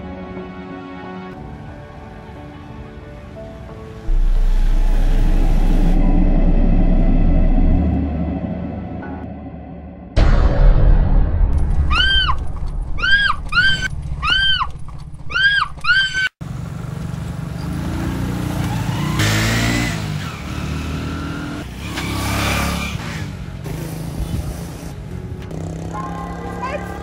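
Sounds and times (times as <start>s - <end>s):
loud low rumble: 4.1s - 14.2s
small motorcycle engine passing by: 16.5s - 24.9s, 25.5s - 27.0s.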